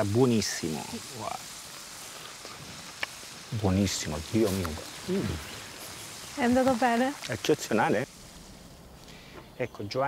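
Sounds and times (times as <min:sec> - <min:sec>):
faint outdoor background hiss: 0:00.0 - 0:10.0.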